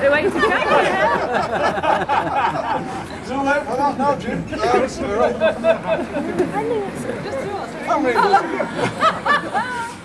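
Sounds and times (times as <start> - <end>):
people talking at once: 2.6 - 10.0.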